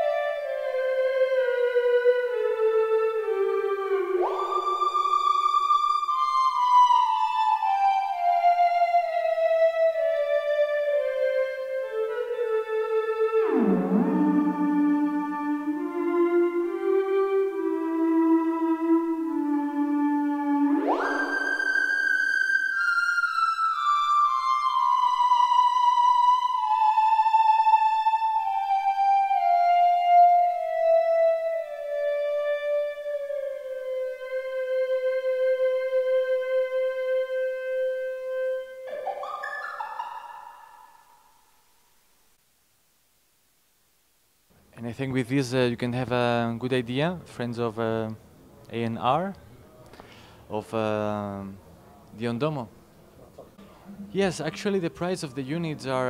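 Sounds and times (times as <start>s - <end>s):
gliding electronic tone: 4.0s - 6.6s, 20.6s - 23.8s, 38.8s - 41.4s.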